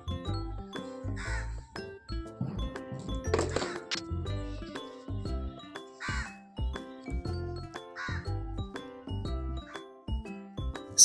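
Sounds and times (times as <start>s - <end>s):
background music with steady beat: 0.0s - 11.0s
crow cawing: 1.2s - 1.5s, 6.0s - 6.3s, 8.0s - 8.2s.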